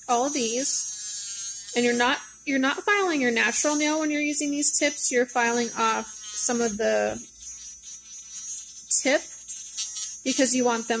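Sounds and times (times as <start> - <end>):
electric nail drill whining: 0.0 - 11.0
sanding bit filing nail: 0.0 - 11.0.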